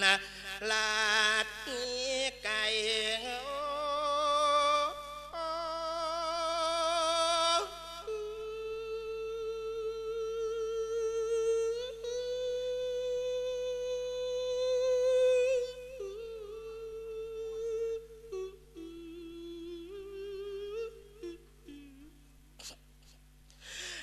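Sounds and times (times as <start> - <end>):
man chanting through microphone: 0.0 - 22.1.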